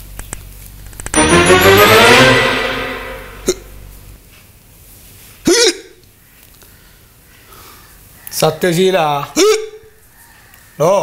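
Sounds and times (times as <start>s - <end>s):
man hiccuping: 5.5s - 6.0s, 9.4s - 9.8s.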